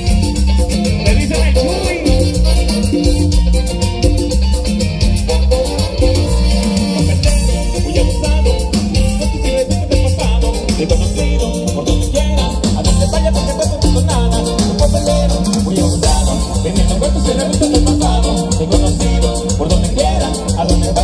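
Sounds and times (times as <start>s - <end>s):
latin dance band playing: 0.0s - 21.0s.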